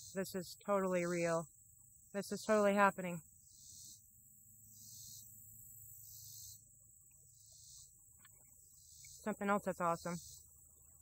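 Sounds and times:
high insect chorus pulsing: 0.0 - 11.0.

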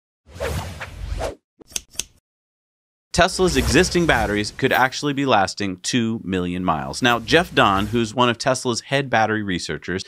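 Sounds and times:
whoosh with low rumble: 3.4 - 4.6.

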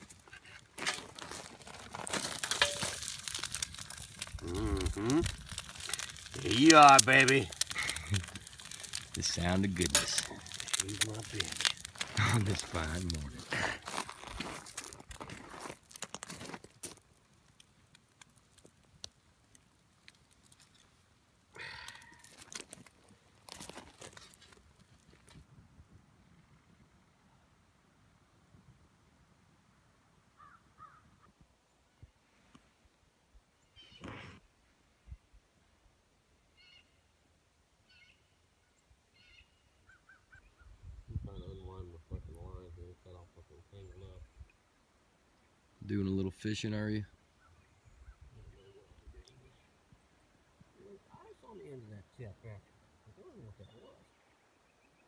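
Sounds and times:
crackling: 0.0 - 25.5
short bird calls: 33.6 - 34.3, 36.6 - 37.1, 37.8 - 38.4, 39.1 - 40.7.

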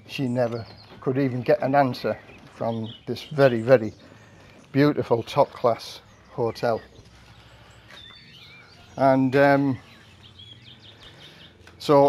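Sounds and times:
quiet outdoor background noise: 0.0 - 12.0
faint bird chirps: 5.6 - 12.0.

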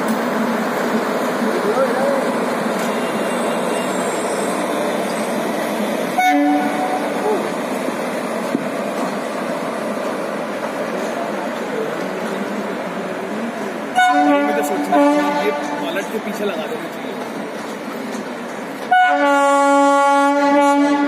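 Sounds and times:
train rumbling past: 0.0 - 21.0
train horn blast: 6.2 - 7.2, 13.9 - 15.8, 18.9 - 21.0.

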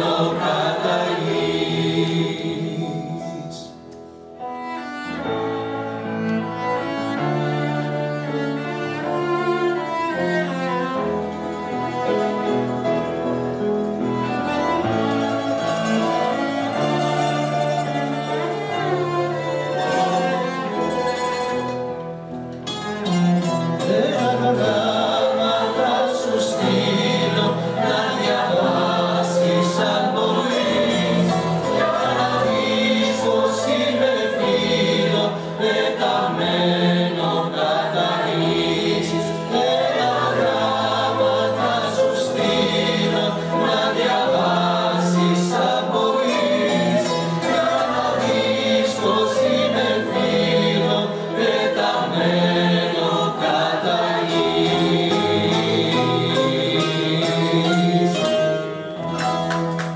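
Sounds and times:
mixed choir singing: 0.0 - 3.8, 5.2 - 22.0, 23.4 - 59.1
cello: 0.0 - 59.9
piano: 0.0 - 59.9.

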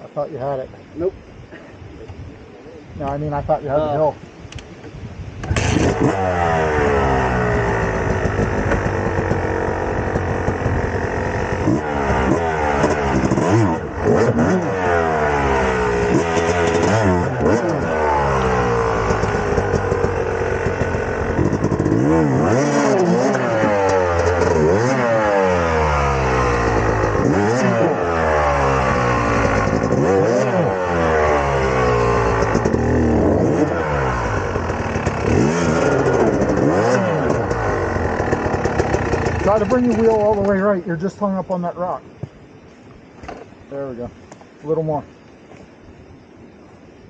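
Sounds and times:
dirt bike engine revving: 5.4 - 41.3.

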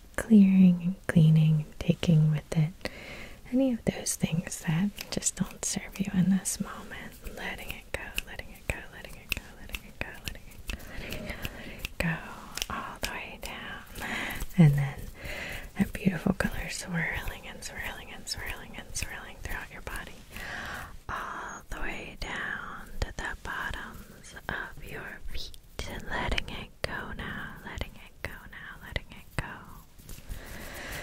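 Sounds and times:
woman whispering: 0.1 - 29.9
small sharp clicks: 7.1 - 14.6.

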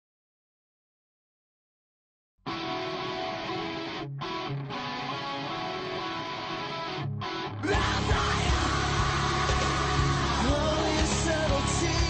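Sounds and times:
rock band music: 2.5 - 12.0
rock guitar playing: 2.5 - 12.0.

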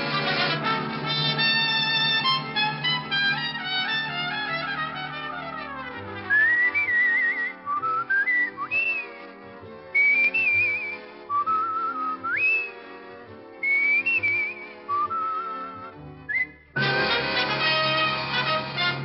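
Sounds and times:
brass band playing: 0.0 - 7.8, 14.8 - 19.0
person whistling a tune: 6.3 - 9.2, 10.0 - 12.8, 13.6 - 16.7.

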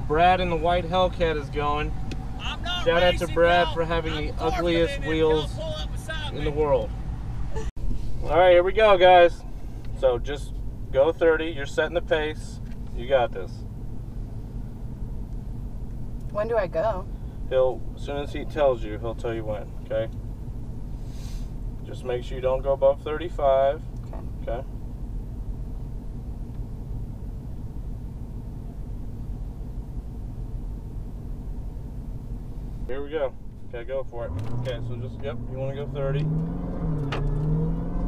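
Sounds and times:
car engine running at low revs: 0.0 - 38.0.

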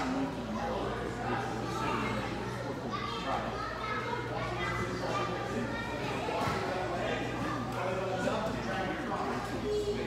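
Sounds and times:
children chattering and calling out: 0.0 - 10.0.

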